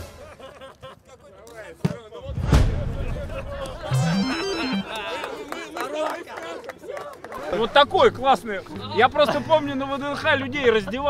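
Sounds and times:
indistinct voices and chatter: 0:01.1 - 0:11.0
electronic stepped tone: 0:03.9 - 0:04.9.

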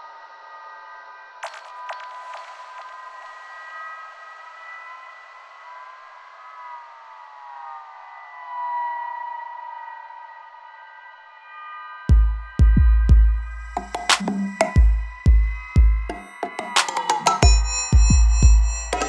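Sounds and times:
siren-like synthesizer tones: 0:13.4 - 0:19.0.

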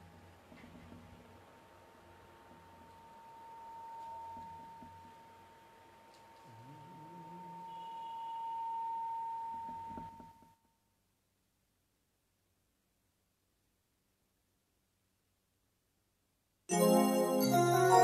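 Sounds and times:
high-pitched tone: 0:16.7 - 0:18.0.

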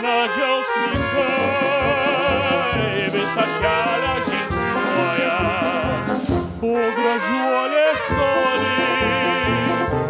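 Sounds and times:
band with brass: 0:00.0 - 0:10.0.

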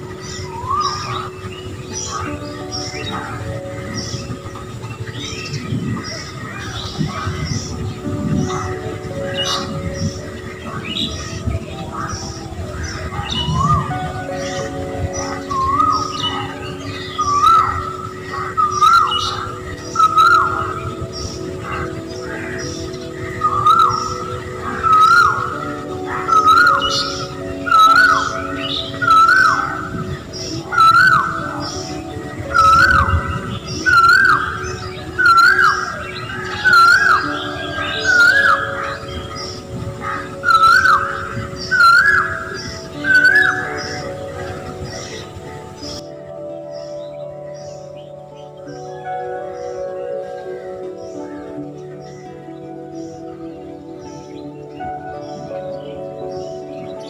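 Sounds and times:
bird whistled call: 0:00.0 - 0:46.1
faint background music: 0:00.0 - 0:57.0.

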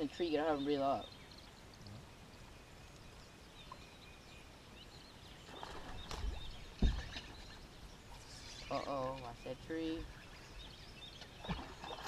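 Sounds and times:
faint bird chirps: 0:00.1 - 0:12.0.

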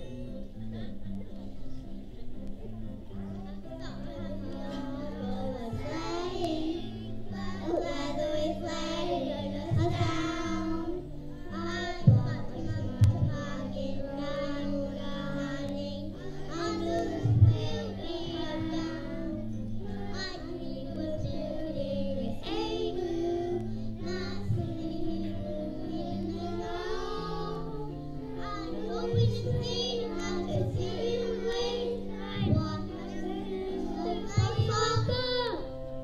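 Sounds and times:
instrumental accompaniment: 0:00.0 - 0:36.0
children singing together: 0:03.2 - 0:35.9
low thumps: 0:11.6 - 0:14.7.

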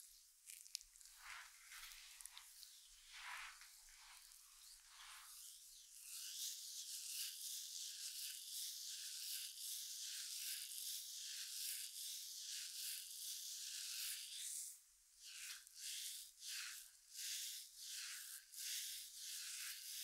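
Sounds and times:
hand rubbing oiled skin: 0:00.5 - 0:05.4.

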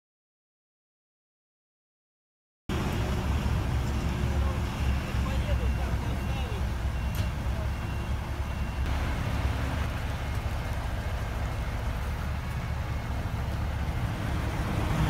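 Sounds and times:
truck diesel engine rumbling: 0:02.7 - 0:15.0.

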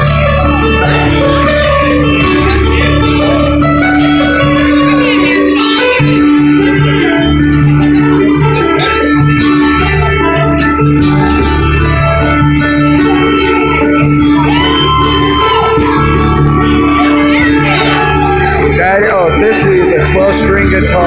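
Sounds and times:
live band music: 0:00.0 - 0:21.0
pulsing bass line: 0:00.0 - 0:21.0.

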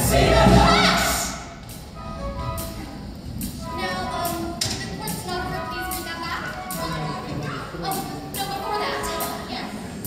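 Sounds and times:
young voices singing together: 0:00.0 - 0:01.6
musical accompaniment: 0:00.0 - 0:10.0.

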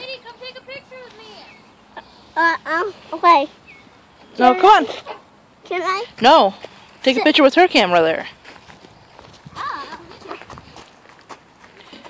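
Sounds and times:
footsteps crunching on mulch: 0:08.2 - 0:12.0.

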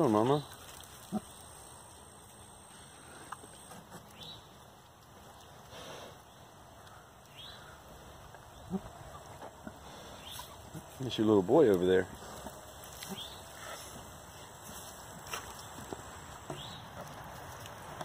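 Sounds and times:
pigs snuffling and rooting: 0:00.0 - 0:18.0.

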